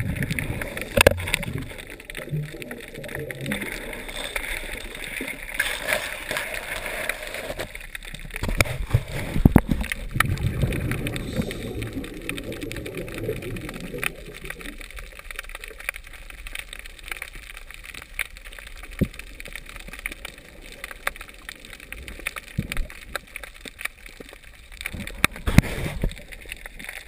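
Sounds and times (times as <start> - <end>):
sharp clicks and crackles: 0.0 - 27.0
underwater bubbling rumble: 0.0 - 27.0.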